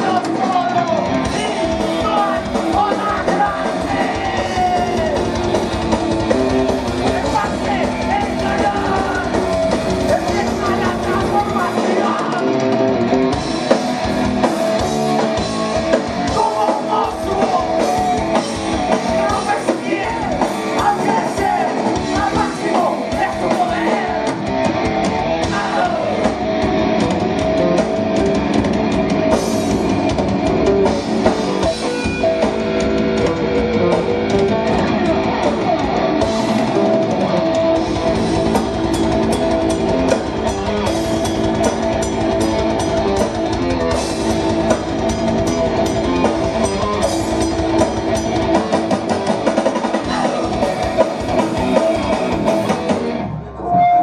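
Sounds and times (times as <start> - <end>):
bass guitar: 0.0 - 54.0
drum kit: 0.0 - 54.0
electric guitar: 0.0 - 54.0.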